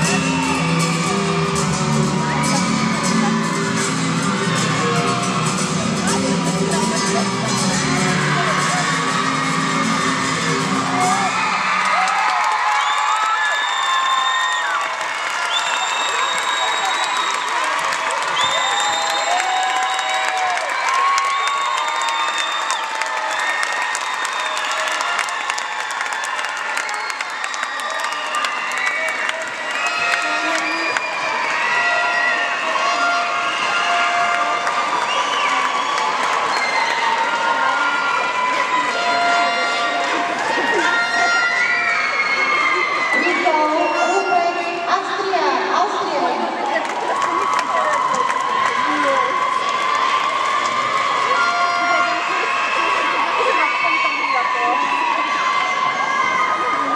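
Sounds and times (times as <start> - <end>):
music: 0.0 - 12.5, 26.8 - 46.2
crowd cheering and shouting: 0.0 - 56.9.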